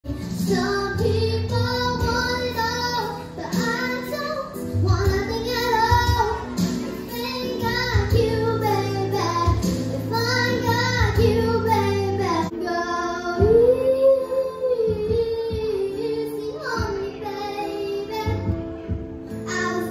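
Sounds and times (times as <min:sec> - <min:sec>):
girl singing into microphone: 0:00.1 - 0:19.9
instrumental accompaniment: 0:00.1 - 0:19.9.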